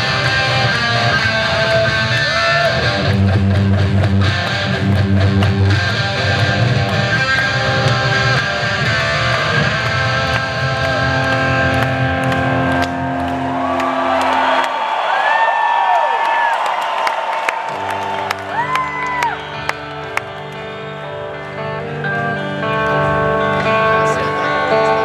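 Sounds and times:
electric guitar sustained notes: 0:00.0 - 0:14.7, 0:17.7 - 0:25.0.

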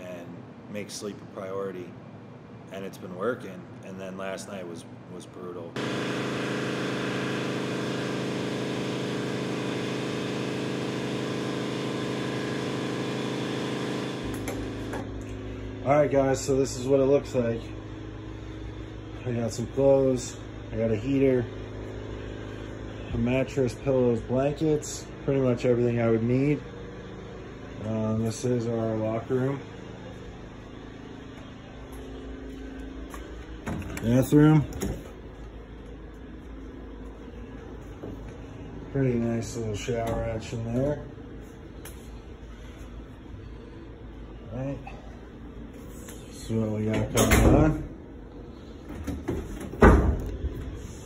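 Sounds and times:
compressor humming: 0:00.0 - 0:51.0.

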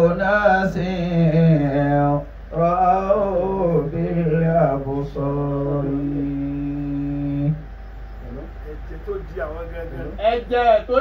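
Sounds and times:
man chanting: 0:00.0 - 0:07.6.

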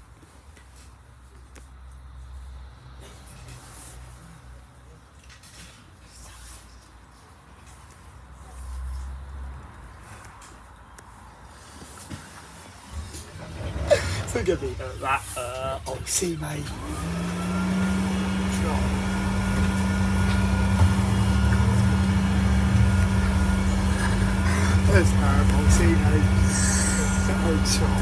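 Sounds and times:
bus engine and road rumble: 0:00.0 - 0:28.0
ticks and rattles from bus body: 0:09.6 - 0:14.6.

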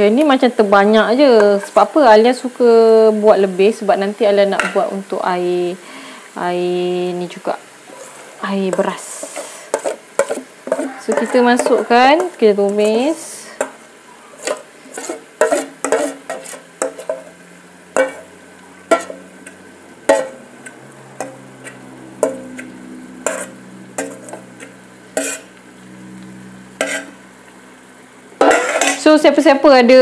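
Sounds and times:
food sizzling: 0:00.0 - 0:30.0
metal spoon scraping steel bowl: 0:09.2 - 0:12.8, 0:14.4 - 0:17.2, 0:21.2 - 0:25.6, 0:26.8 - 0:27.2, 0:28.4 - 0:29.1.

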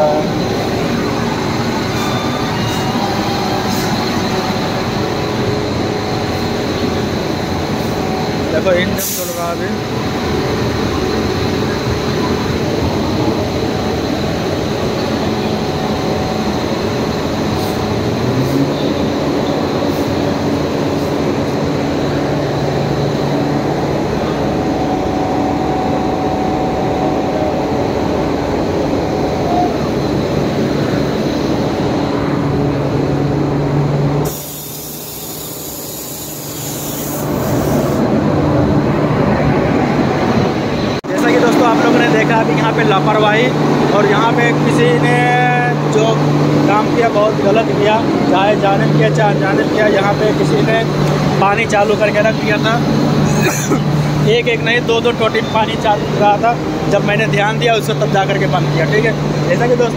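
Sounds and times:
locomotive running with low hum: 0:00.0 - 0:59.9
high hiss: 0:00.2 - 0:10.9, 0:34.1 - 0:38.1.

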